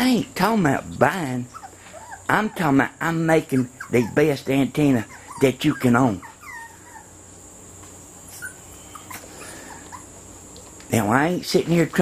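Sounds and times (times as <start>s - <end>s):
high-pitched animal calls: 3.5s - 7.2s, 8.3s - 10.2s.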